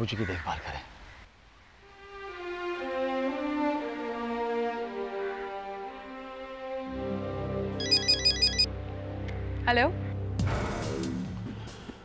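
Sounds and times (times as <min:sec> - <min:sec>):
phone ringtone trill: 0:07.8 - 0:08.7.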